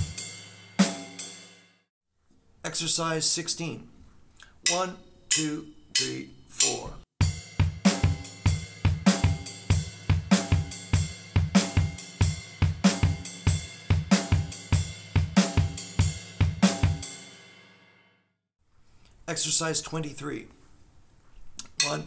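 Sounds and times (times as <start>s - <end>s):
bass drum beat: 0.0s - 1.1s, 7.2s - 17.1s
ride cymbal shuffle pattern: 0.0s - 1.6s, 4.6s - 17.5s.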